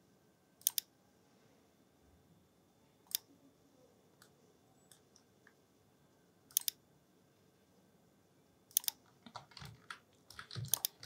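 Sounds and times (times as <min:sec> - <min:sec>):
computer mouse clicking: 0:00.6 - 0:00.9, 0:06.5 - 0:06.8, 0:08.7 - 0:11.0.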